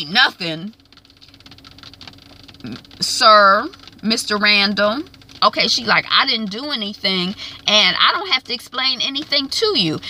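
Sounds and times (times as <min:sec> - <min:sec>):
car engine humming: 0:00.0 - 0:10.0
faint fast ticking: 0:00.4 - 0:10.0.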